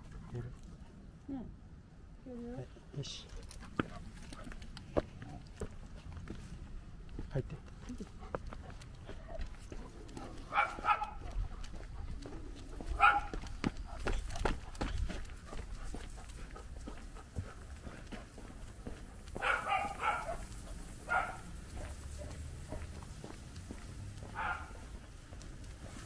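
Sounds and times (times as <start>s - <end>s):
footsteps on pavement: 3.3s - 26.0s
dog barking: 10.3s - 11.5s, 13.0s - 13.4s, 19.4s - 23.0s, 24.2s - 25.0s.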